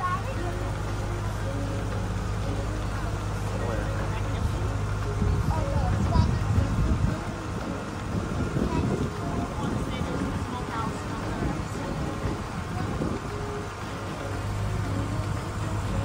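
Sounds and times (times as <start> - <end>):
boat engine drone: 0.0 - 16.0
faint voices: 0.0 - 16.0
wind buffeting microphone: 2.4 - 16.0.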